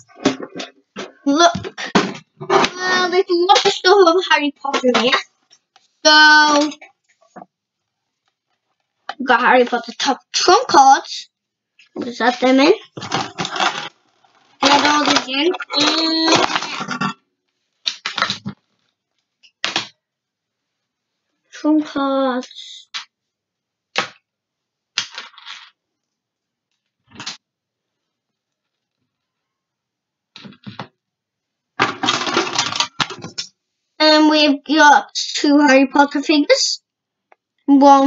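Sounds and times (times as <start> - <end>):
person's voice: 0.0 - 5.2, 6.1 - 6.8, 9.1 - 11.3, 11.9 - 12.9, 14.6 - 17.0, 21.6 - 22.9, 34.0 - 36.8, 37.7 - 38.0
cards and toys rattling in tin: 13.0 - 13.9, 14.6 - 17.1, 31.8 - 33.4.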